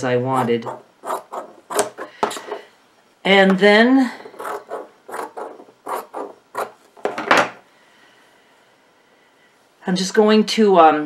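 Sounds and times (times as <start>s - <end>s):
scissors snipping fabric: 4.4s - 6.8s.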